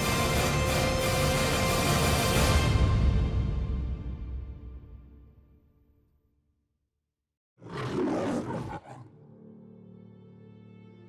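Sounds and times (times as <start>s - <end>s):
soft orchestral music: 0.0s - 5.2s, 9.4s - 11.0s
lion roaring: 7.6s - 9.4s.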